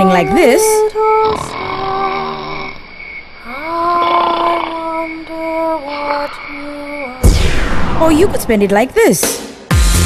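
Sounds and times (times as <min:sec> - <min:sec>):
person's long drawn-out vocal sound: 0:00.0 - 0:02.8, 0:03.4 - 0:07.3.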